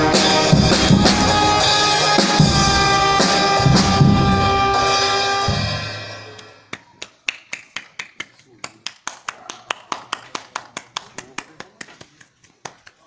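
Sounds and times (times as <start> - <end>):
brass band note: 0.0 - 6.6.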